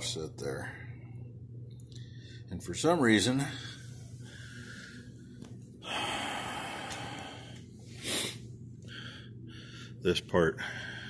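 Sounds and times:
man breathing heavily: 3.4 - 11.0.

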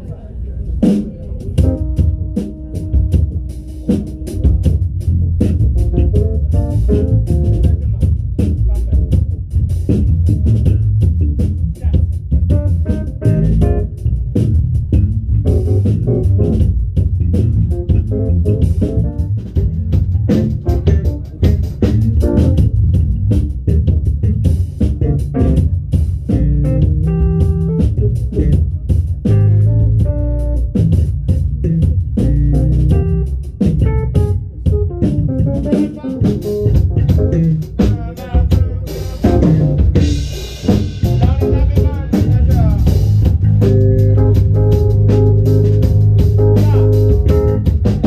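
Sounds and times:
drum kit with cymbals and snare: 0.7 - 48.0
electric bass line: 1.2 - 48.0
keyboard playing: 1.6 - 7.8, 12.5 - 14.4, 15.0 - 16.9, 17.7 - 23.1, 23.7 - 28.6, 29.3 - 38.0, 39.0 - 48.0.

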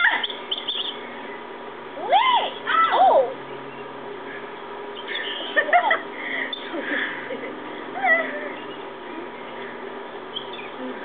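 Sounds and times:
girls squealing: 0.0 - 0.3, 2.0 - 3.4, 7.9 - 8.7.

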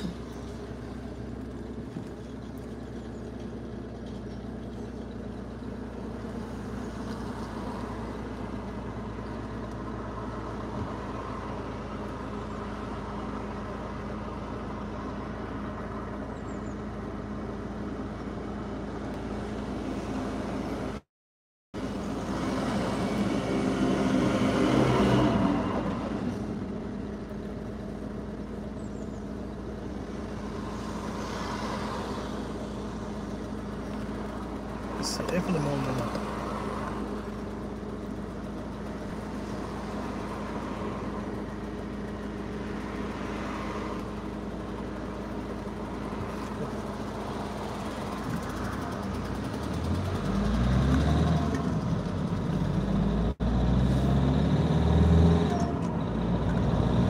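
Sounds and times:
car engine hum: 0.0 - 21.1, 21.8 - 57.0
cars passing outside: 0.0 - 21.1, 21.8 - 57.0.

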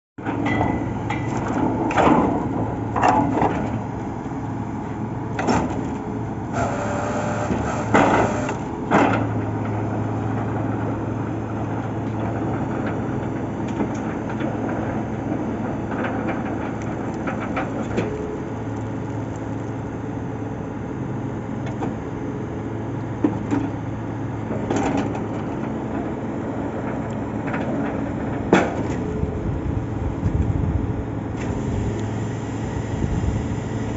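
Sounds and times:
drilling rig engine hum: 0.2 - 13.1, 25.3 - 33.9.

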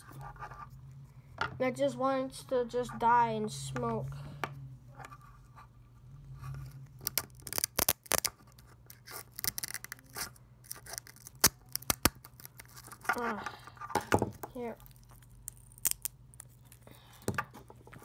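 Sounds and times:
low steady hum: 0.0 - 18.0
loudspeaker being torn apart: 7.0 - 13.2.

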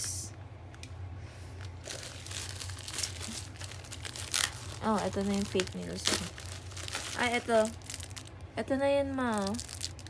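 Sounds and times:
plastic packaging crinkling: 1.6 - 10.0.

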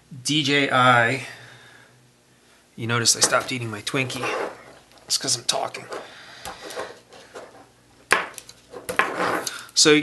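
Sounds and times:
rustling of parts and wires: 3.1 - 9.9.

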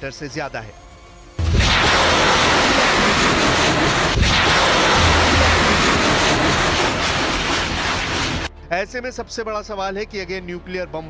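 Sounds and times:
rocket motor roaring: 1.4 - 8.5
sharp crack: 1.4 - 8.5.

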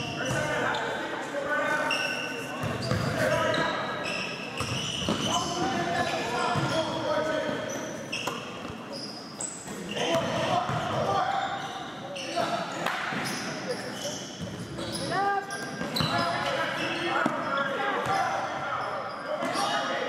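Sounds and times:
players and spectators voices: 0.0 - 20.0
sneaker squeaks on court floor: 1.7 - 19.9.

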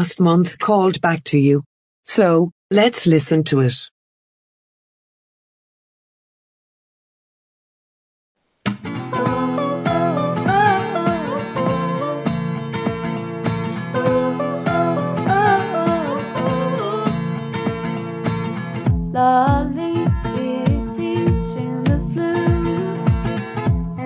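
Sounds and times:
strummed acoustic guitar: 8.7 - 24.0
woman singing: 9.0 - 12.4, 13.9 - 17.3, 19.1 - 24.0
deep kick drum beat: 18.9 - 24.0.

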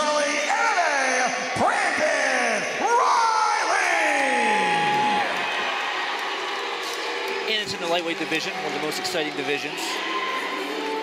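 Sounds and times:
crowd cheering: 2.8 - 11.0.

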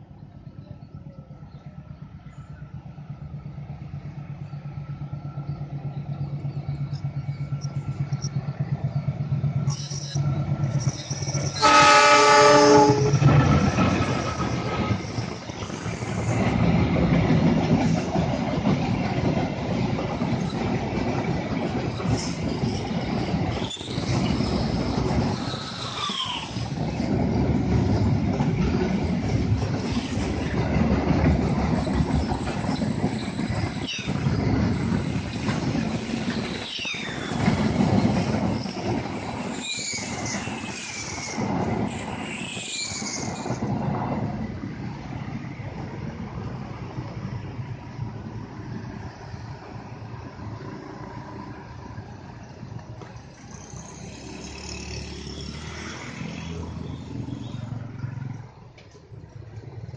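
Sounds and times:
diesel locomotive engine hum: 0.0 - 59.9
wheels rumbling on rails: 0.0 - 59.9
train horn blast: 11.6 - 13.3.

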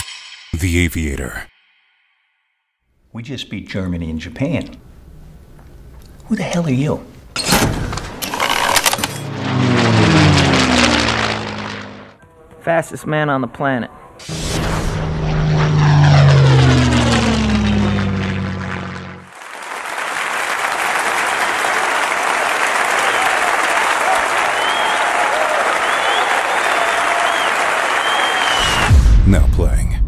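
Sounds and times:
propeller aircraft engine: 7.9 - 12.2, 14.2 - 19.4
crowd applauding: 19.3 - 28.9
high whistles: 22.8 - 28.9.

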